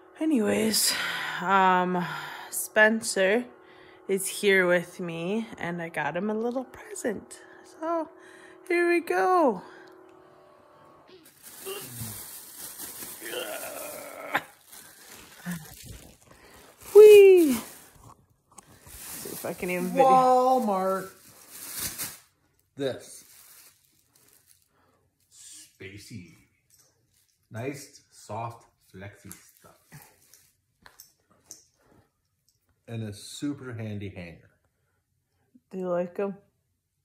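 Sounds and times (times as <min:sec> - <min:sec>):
garment rustling: 0:11.2 - 0:24.7
person holding wordless sound: 0:19.2 - 0:21.2.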